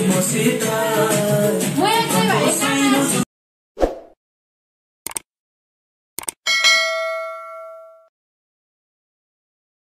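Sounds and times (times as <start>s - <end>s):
notification bell ding: 6.5s - 8.1s.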